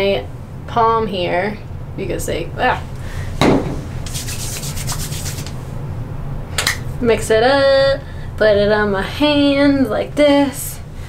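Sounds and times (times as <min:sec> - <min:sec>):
hand tap: 0:03.4 - 0:03.8
oiled hands rubbing together: 0:03.7 - 0:05.7.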